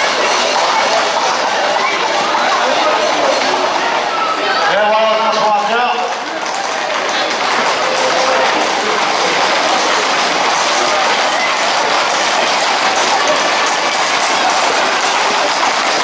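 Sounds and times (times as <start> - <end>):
people shouting: 0.0 - 16.0
hooves clattering on pavement: 5.0 - 16.0.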